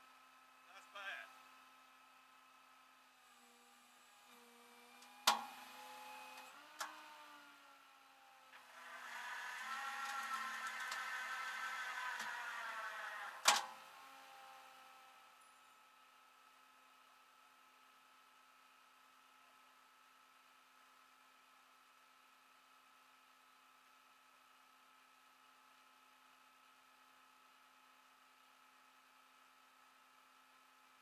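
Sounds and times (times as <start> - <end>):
mechanical whine: 8.6 - 15.7.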